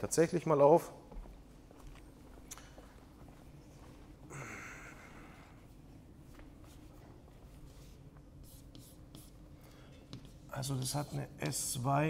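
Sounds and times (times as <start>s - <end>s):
chalk writing on blackboard: 6.6s - 11.7s.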